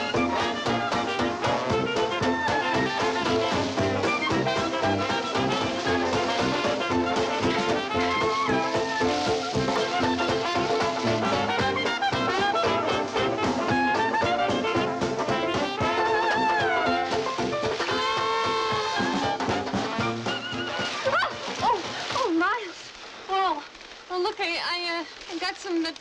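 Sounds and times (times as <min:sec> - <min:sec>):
brass-led jazz band music: 0:00.0 - 0:21.6.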